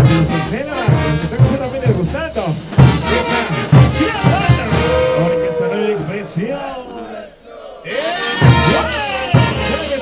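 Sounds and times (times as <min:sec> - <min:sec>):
brass band playing: 0:00.0 - 0:10.0.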